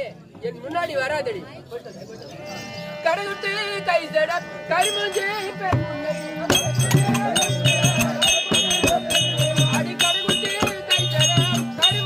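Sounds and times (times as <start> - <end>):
held instrumental note: 2.4 - 12.0.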